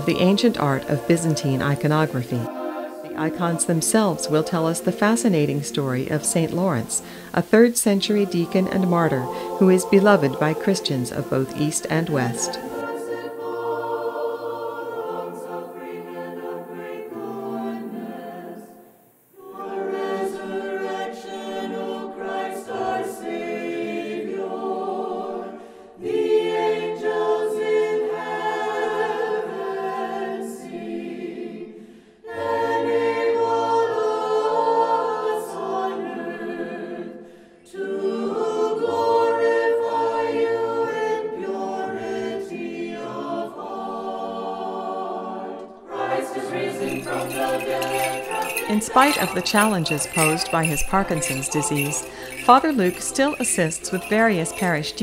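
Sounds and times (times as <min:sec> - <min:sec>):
small bells jingling: 0:00.0 - 0:02.5, 0:03.2 - 0:12.9, 0:46.3 - 0:55.0
choir chanting unaccompanied: 0:00.0 - 0:55.0.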